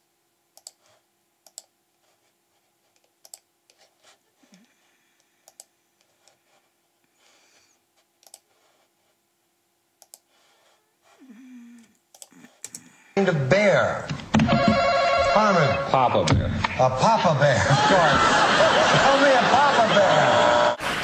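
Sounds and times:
faint steady hum: 0.0s - 21.0s
mouse and keyboard clicks: 0.6s - 0.8s, 1.4s - 1.7s, 3.0s - 3.8s, 5.4s - 6.4s, 8.2s - 8.5s, 10.0s - 10.3s, 12.1s - 12.9s
game show audio with voices: 13.2s - 14.1s, 14.9s - 20.8s.

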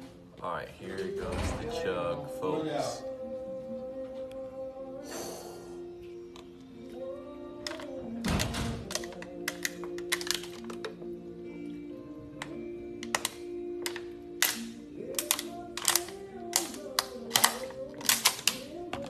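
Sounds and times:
background music with held chords: 0.0s - 19.0s
plastic bottle crackling: 7.7s - 11.1s, 12.4s - 19.0s.

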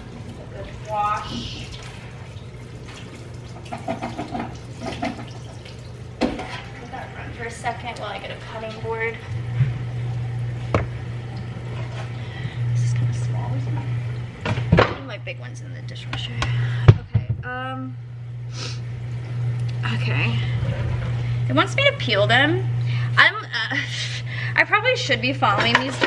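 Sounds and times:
steady low hum: 0.0s - 26.0s
small kitchen knocks: 3.7s - 5.4s, 6.2s - 6.6s, 10.7s - 11.0s, 14.4s - 15.1s, 16.1s - 17.5s.

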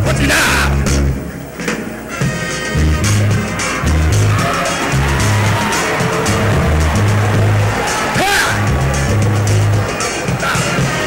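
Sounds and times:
bass line: 2.7s - 10.0s.

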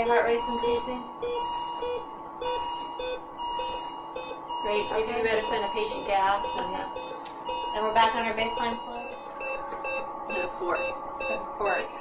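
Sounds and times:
medical monitor beeping: 0.0s - 12.0s
steady high electronic tone: 0.0s - 12.0s.

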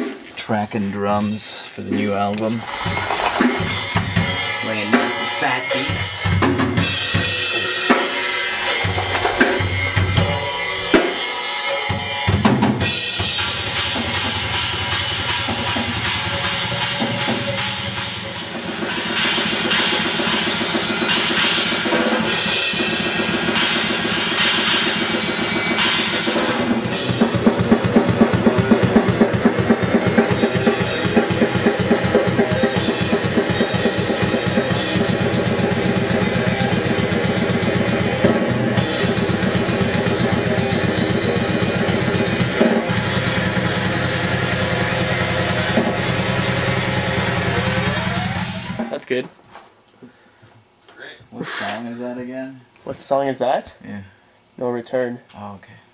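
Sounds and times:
grindcore band playing: 0.0s - 49.1s
fast drum kit: 1.9s - 49.2s.

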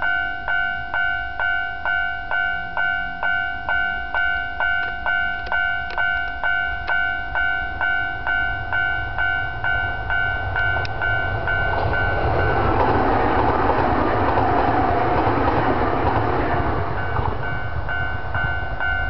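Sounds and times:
electric train passing: 0.0s - 19.0s
level crossing warning bell: 0.0s - 19.0s.

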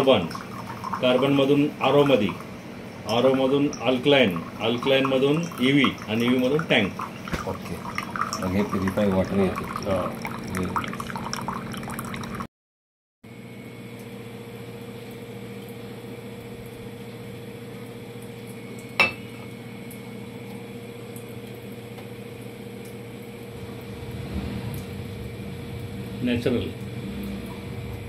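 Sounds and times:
water running into steel pot: 3.1s - 12.5s
steady low hum: 18.3s - 28.0s.

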